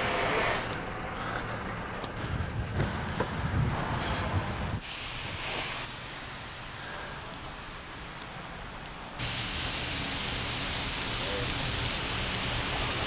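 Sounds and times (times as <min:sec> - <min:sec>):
pressure washer spraying water: 0:04.8 - 0:13.0.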